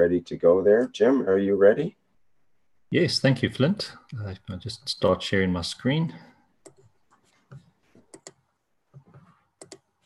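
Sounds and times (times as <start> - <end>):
mouse and keyboard clicks: 9.0 - 9.9.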